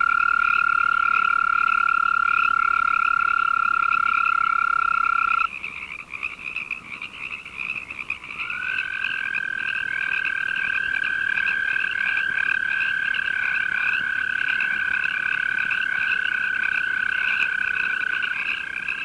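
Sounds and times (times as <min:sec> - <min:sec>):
toad trilling: 0:00.0 - 0:06.0, 0:08.0 - 0:19.0
tree frog calling: 0:00.0 - 0:19.0.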